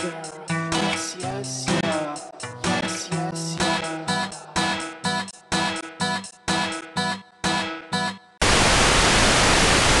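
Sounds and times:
television static hiss: 0:08.4 - 0:10.0.

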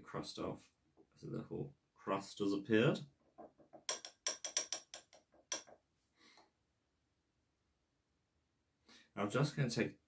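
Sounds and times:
metal spoon clinking ceramic cup: 0:03.9 - 0:05.7.

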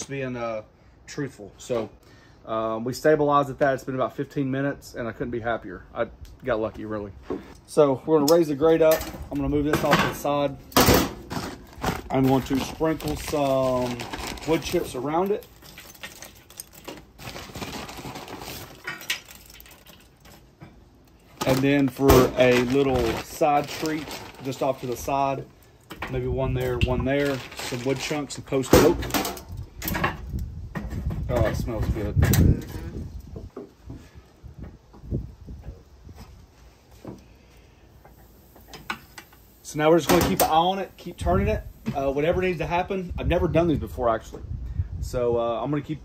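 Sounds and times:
wood chips clattering onto charcoal: 0:08.2 - 0:30.4.

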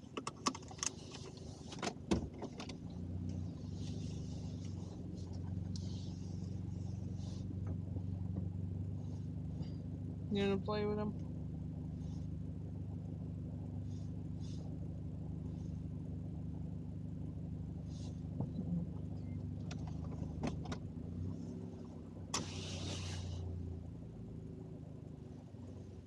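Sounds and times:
car engine hum inside cabin: 0:00.0 - 0:26.0
short hiss: 0:22.3 - 0:23.4.

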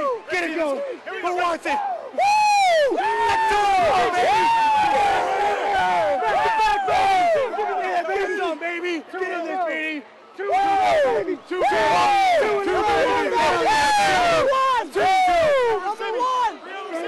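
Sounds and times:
crowd shouting and cheering: 0:00.0 - 0:17.0.

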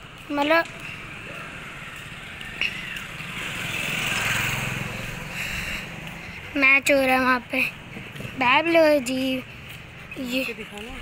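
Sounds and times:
scooter engine passing by: 0:00.1 - 0:11.0.

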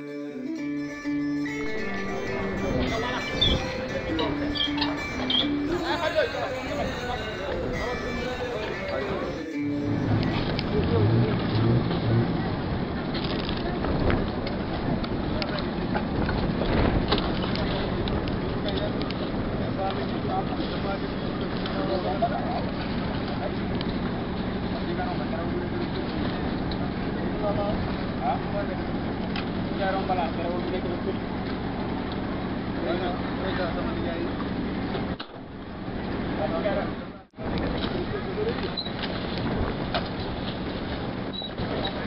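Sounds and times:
people talking: 0:01.6 - 0:23.8, 0:24.6 - 0:29.0, 0:29.7 - 0:31.5, 0:32.8 - 0:34.4, 0:36.3 - 0:38.8
vehicle engine running: 0:09.5 - 0:41.3.

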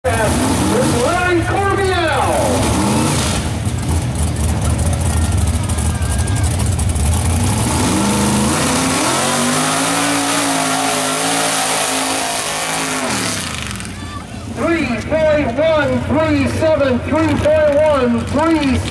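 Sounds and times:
truck engine revving: 0:00.1 - 0:16.6.

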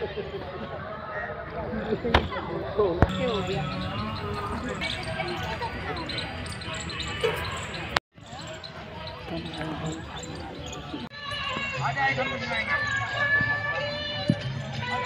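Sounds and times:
chatter of many voices: 0:00.0 - 0:15.0.

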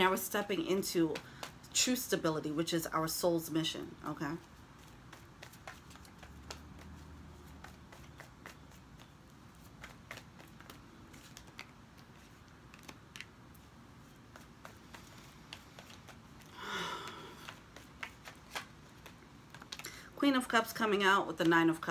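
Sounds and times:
cards being shuffled: 0:00.4 - 0:02.0, 0:04.3 - 0:16.5, 0:17.1 - 0:20.0.

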